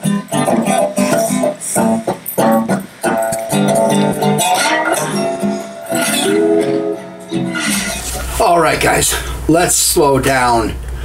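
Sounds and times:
strummed acoustic guitar: 0.0 - 9.5.

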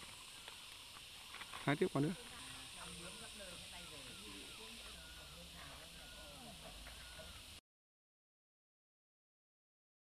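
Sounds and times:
steady hiss: 0.0 - 7.6
distant people talking: 1.8 - 7.6.

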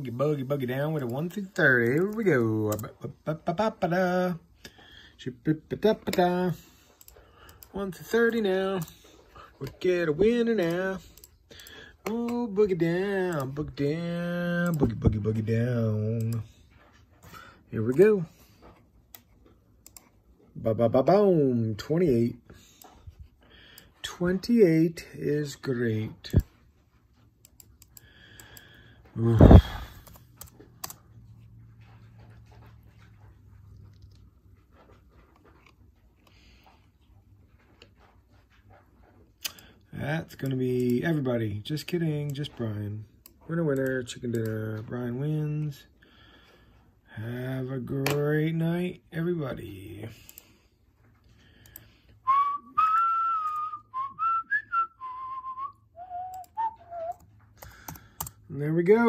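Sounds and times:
computer mouse clicks: 19.1 - 20.1, 30.0 - 31.0, 57.1 - 58.4
person whistling a tune: 52.2 - 57.2.

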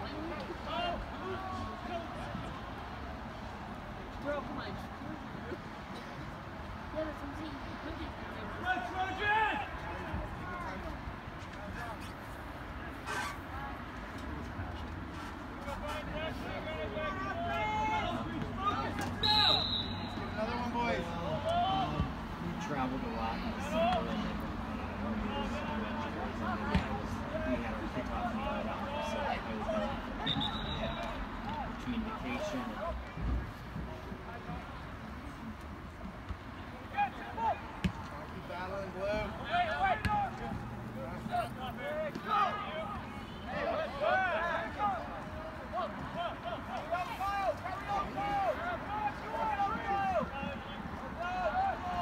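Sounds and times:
referee's whistle blast: 19.2 - 20.4, 30.2 - 31.2
soccer ball kicked thud: 26.7 - 27.0
people shouting and calling: 41.3 - 52.0.

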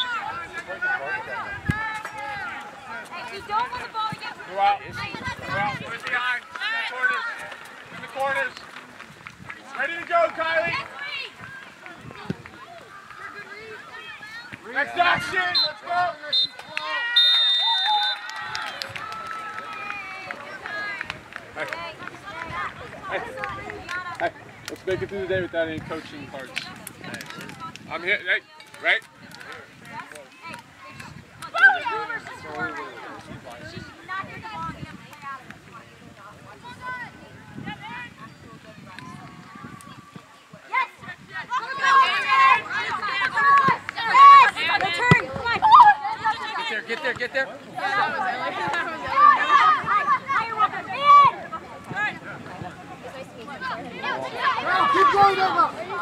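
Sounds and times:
voices calling out outdoors: 0.0 - 56.0.

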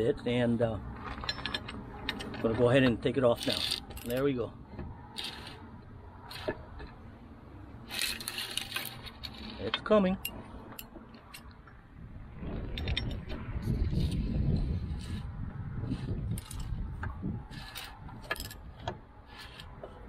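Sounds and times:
light metallic clicks and scrapes: 0.9 - 7.0, 7.8 - 11.7, 12.6 - 20.0
low rumble: 11.5 - 19.1.

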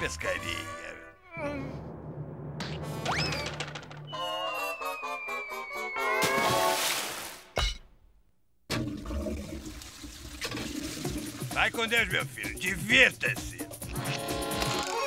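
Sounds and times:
long falling whistle: 4.1 - 6.4
rising slide whistle: 4.1 - 6.8
loud water splash: 6.2 - 7.6.

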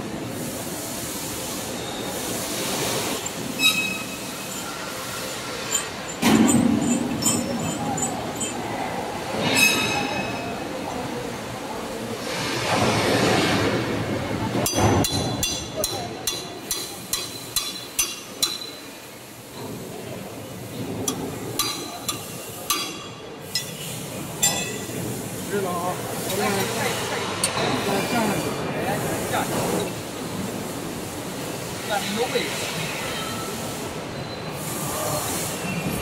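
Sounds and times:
workshop noise: 0.0 - 36.0
metallic clinks of steel tools: 3.2 - 8.8, 21.1 - 24.9.

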